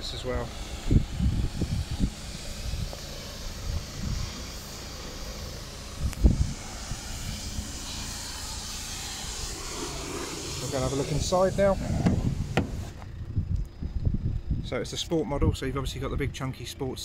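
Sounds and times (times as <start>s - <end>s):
low rumbles: 0.0s - 16.4s
outdoor background hiss: 0.0s - 17.0s
loud thump: 11.8s - 13.1s.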